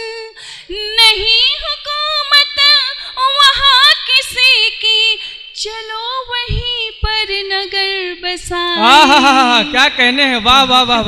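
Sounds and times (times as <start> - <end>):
woman singing unaccompanied: 0.0 - 9.1.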